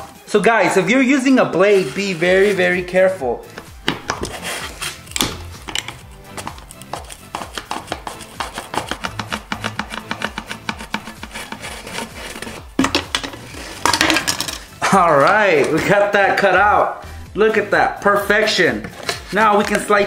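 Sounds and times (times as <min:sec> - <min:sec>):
background music with steady beat: 0:00.0 - 0:20.0
utility knife scraping through plastic: 0:01.7 - 0:02.8, 0:04.0 - 0:14.0, 0:18.8 - 0:19.9.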